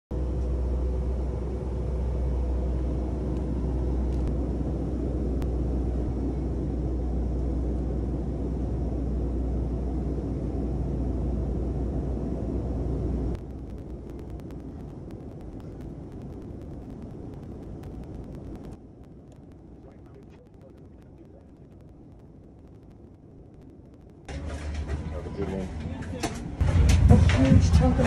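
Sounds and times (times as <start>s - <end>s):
airliner cabin rumble: 0.1s - 28.0s.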